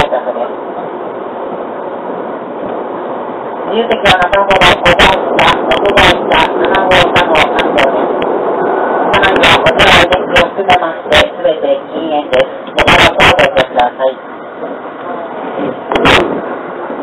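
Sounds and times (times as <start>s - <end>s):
announcement over distorted speaker: 0.0s - 1.2s, 3.5s - 17.0s
train rumble: 0.0s - 17.0s.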